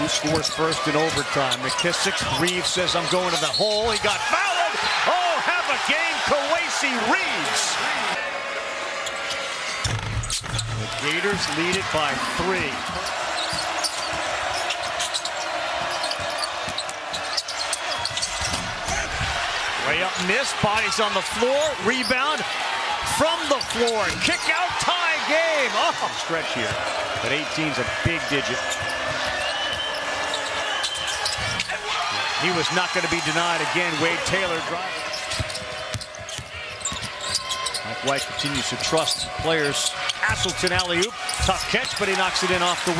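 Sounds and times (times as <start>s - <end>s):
arena crowd noise: 0.0s - 42.9s.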